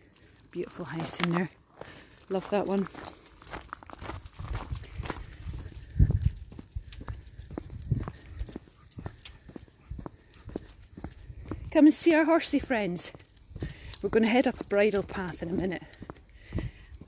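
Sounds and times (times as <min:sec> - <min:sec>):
footsteps on tarmac: 0:00.1 - 0:17.0.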